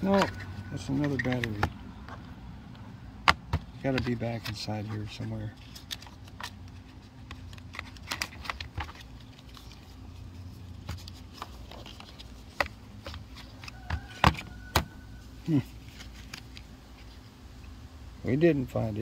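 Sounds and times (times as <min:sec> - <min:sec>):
cardboard box clicks and rustles: 0:00.0 - 0:01.8, 0:03.3 - 0:16.7.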